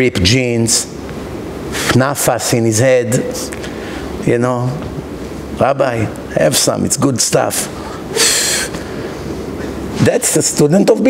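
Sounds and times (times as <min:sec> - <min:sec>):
low room noise: 0:00.0 - 0:11.0
man hissing breath: 0:07.8 - 0:09.3.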